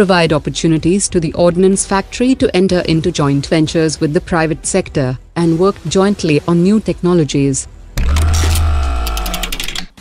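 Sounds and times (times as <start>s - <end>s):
held tones: 8.0s - 9.9s
rapid ticks: 8.1s - 10.0s.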